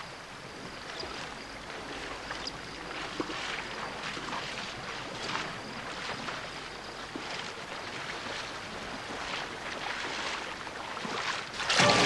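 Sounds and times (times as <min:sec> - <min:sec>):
legs splashing through water: 0:00.6 - 0:12.0.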